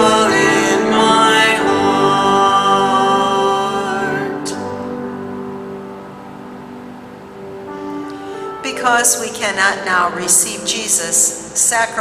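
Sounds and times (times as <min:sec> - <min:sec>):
sustained instrumental chord: 0:00.0 - 0:11.6.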